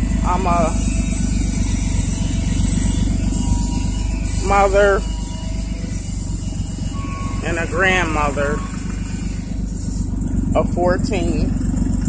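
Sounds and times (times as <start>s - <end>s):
van engine idling with exhaust rumble: 0.0s - 12.0s.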